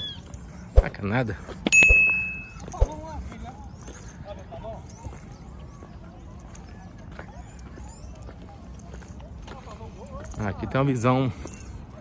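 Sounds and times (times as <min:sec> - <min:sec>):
distant people talking: 0:00.0 - 0:12.0
faint high chirps: 0:01.7 - 0:09.2.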